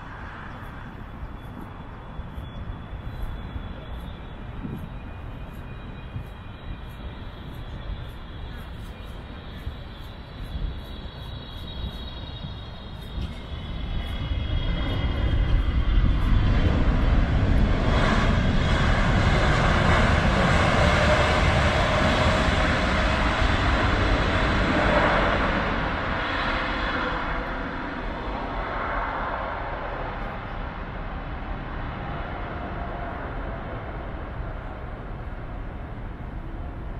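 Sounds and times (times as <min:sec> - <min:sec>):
jet engines during landing: 0:00.0 - 0:36.9.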